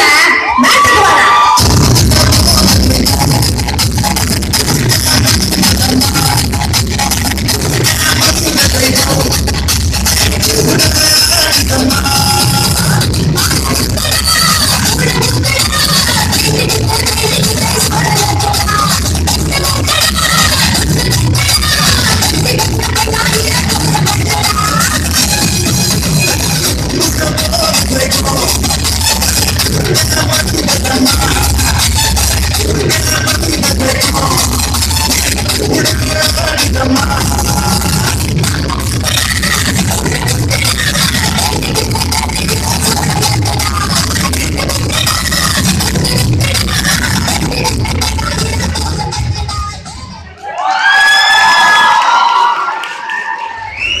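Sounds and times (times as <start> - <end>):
audience cheering: 0.0 - 2.1, 50.4 - 54.0
audience shouting and cheering: 0.0 - 3.4, 49.8 - 54.0
dance music with heavy beat: 0.0 - 50.4.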